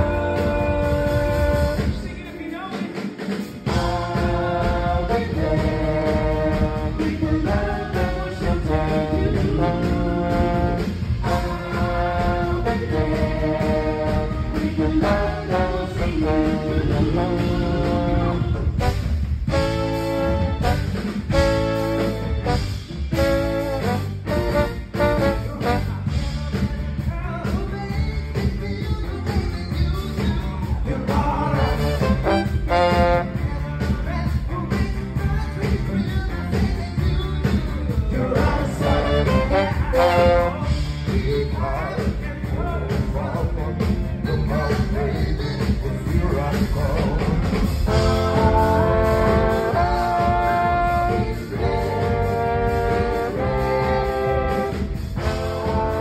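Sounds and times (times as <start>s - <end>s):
trombone playing held notes: 0.0s - 2.1s, 3.6s - 26.4s, 31.5s - 33.6s, 38.6s - 41.1s, 46.5s - 56.0s
brass horn section: 0.0s - 2.2s, 3.4s - 27.1s, 30.9s - 56.0s
backing band: 0.0s - 56.0s.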